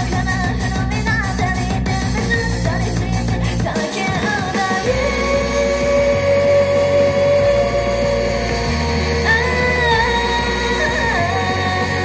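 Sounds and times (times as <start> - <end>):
live rock-styled pop music: 0.0 - 12.0
steady bass: 0.0 - 12.0.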